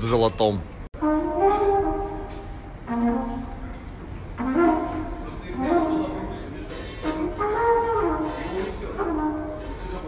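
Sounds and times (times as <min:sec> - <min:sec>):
trumpet playing bending notes: 0:01.0 - 0:10.0.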